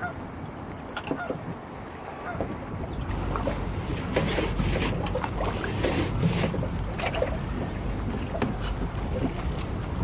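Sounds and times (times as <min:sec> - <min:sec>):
water lapping against boat hull: 0:00.0 - 0:10.0
wind rumble on microphone: 0:00.0 - 0:10.0.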